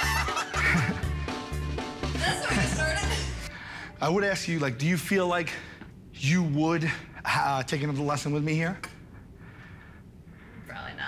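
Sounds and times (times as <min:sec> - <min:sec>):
men laughing hard: 0:00.0 - 0:01.3
music with steady bass beat: 0:00.0 - 0:03.4.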